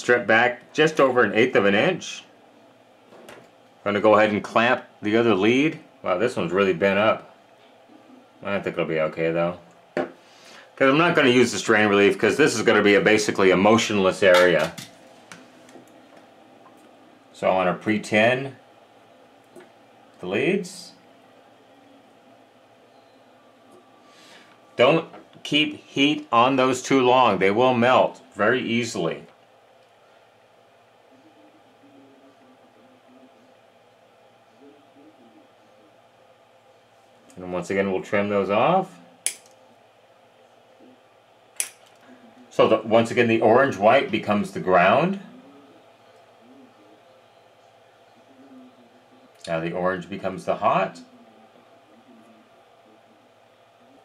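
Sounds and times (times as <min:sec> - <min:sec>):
wire cutters snipping cable: 0:39.2 - 0:39.6, 0:41.6 - 0:42.0.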